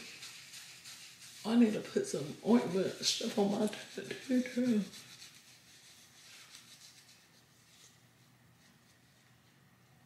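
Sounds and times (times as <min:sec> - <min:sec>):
wipe rubbing against skin: 0:00.0 - 0:09.6.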